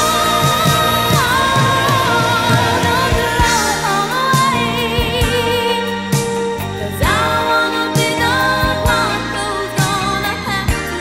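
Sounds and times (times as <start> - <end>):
full band with drum beat: 0.0 - 11.0
singing with vibrato: 0.0 - 11.0.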